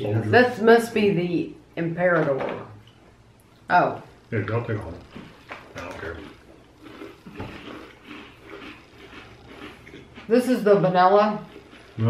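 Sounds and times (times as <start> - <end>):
people chewing: 2.9 - 12.0.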